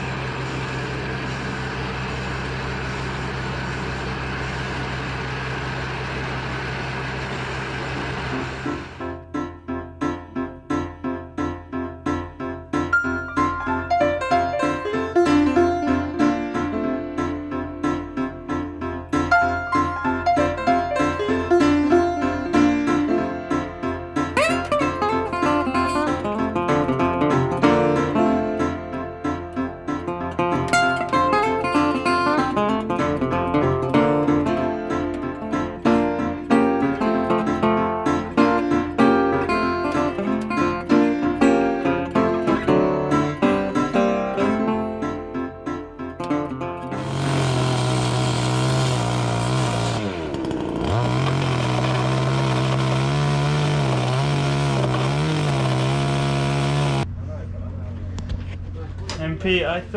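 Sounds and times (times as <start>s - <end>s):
power tool cutting timber: 0.0s - 9.1s, 19.3s - 44.6s, 46.2s - 57.1s
acoustic guitar music: 7.9s - 57.0s.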